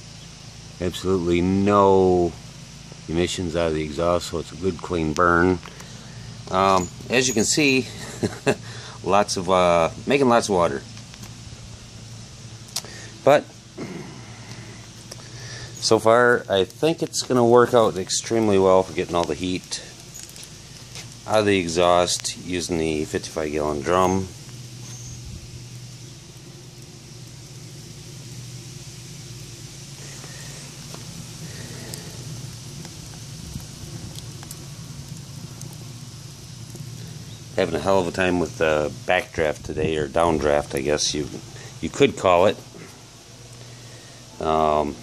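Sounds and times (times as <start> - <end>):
burning wood crackling: 0.0 - 45.0
wood-fired heater rumbling: 0.0 - 45.0
person speaking: 21.3 - 24.3.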